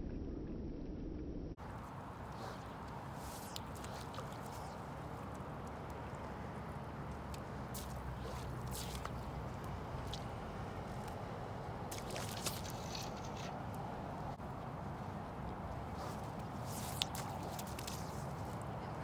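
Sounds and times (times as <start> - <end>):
steady low rumble: 0.0 - 19.0
fishing line slapping water: 2.2 - 6.3, 7.0 - 11.2, 11.8 - 13.9, 15.8 - 18.6.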